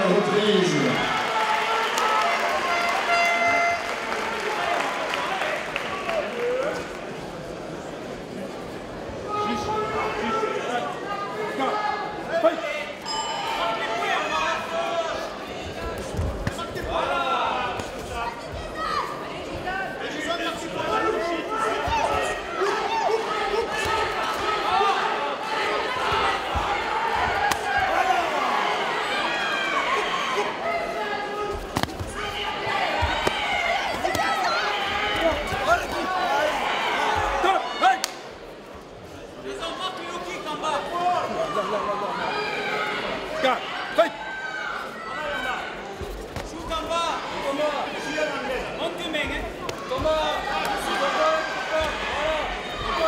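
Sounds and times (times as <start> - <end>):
spectators and coaches shouting: 9.2 - 38.4, 39.4 - 53.0.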